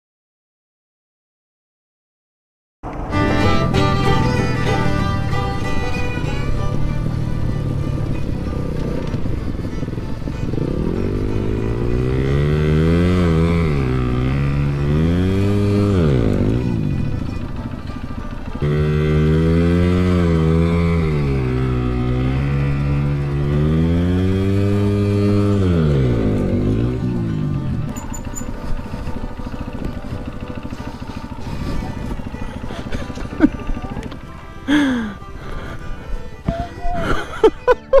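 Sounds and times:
dirt bike engine revving: 2.9 - 38.0.

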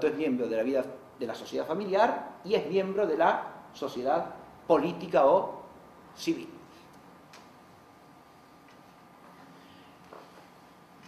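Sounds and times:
faint high hum: 0.0 - 11.0.

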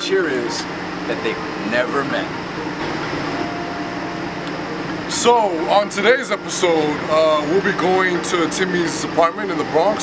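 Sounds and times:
mechanical hum and hiss: 0.0 - 10.0.

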